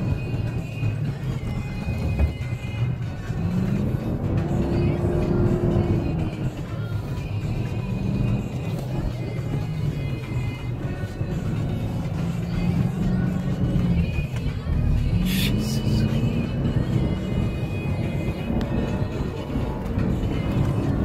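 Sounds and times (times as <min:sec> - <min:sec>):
music playing in vehicle: 0:00.0 - 0:21.0
vehicle engine and driving noise: 0:00.0 - 0:21.0.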